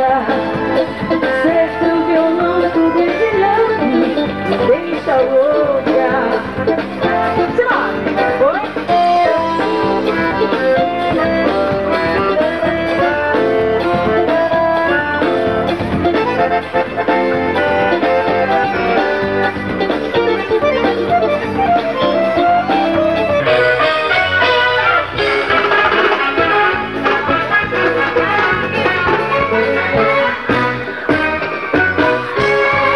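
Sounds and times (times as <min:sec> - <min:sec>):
live band playing instrumental: 0:00.0 - 0:32.9.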